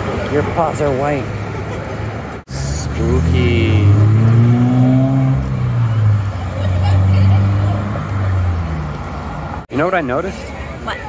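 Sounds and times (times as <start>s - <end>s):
car engines passing: 0.0s - 10.9s.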